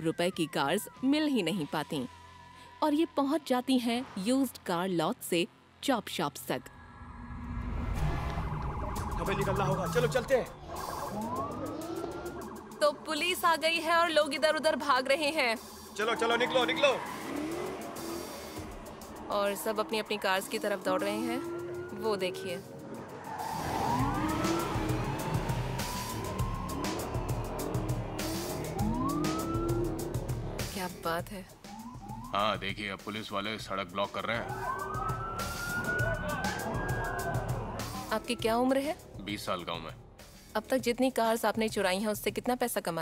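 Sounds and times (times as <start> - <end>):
police siren wailing: 0.0 - 3.0, 6.8 - 14.7, 15.6 - 32.8, 34.0 - 38.8
car engines rumbling: 6.7 - 32.3.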